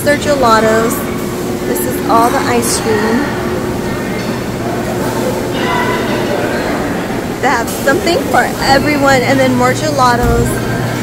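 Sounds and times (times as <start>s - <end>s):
constant low hum: 0.0s - 11.0s.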